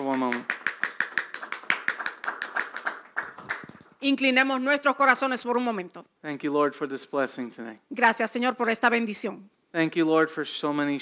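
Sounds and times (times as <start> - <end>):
group hand clapping: 0.0 - 4.0.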